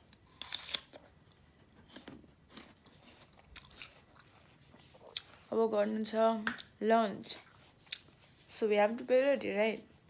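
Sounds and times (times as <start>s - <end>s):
chewing crunches: 0.2s - 4.4s.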